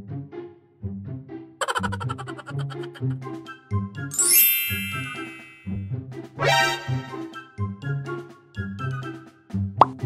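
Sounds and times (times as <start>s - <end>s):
bright chime: 4.1s - 5.9s.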